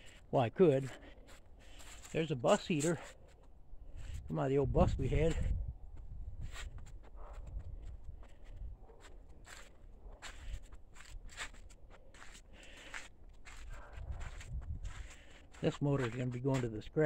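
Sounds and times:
footsteps on dead leaves: 0:00.8 - 0:03.4, 0:08.3 - 0:16.7.

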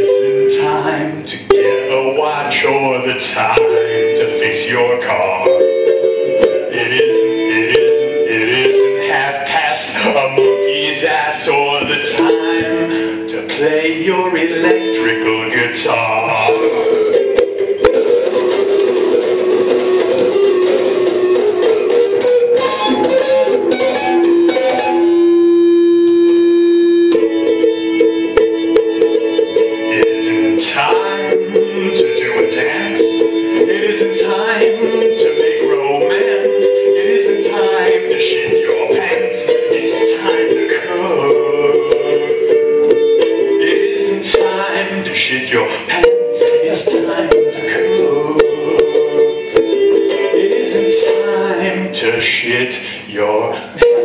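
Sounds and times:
man singing: 0:00.0 - 0:18.6, 0:28.4 - 0:54.0
ukulele strumming: 0:00.0 - 0:54.0.

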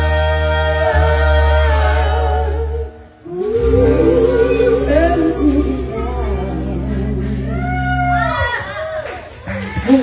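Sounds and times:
live rock band: 0:02.6 - 0:10.0
low bass note: 0:03.5 - 0:08.5.

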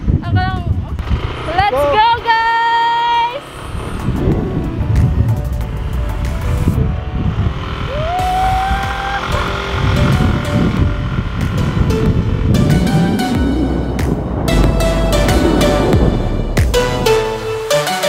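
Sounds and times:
wind rumbling on microphone: 0:00.0 - 0:02.3, 0:03.5 - 0:16.8
small motorcycle running: 0:00.7 - 0:13.8.

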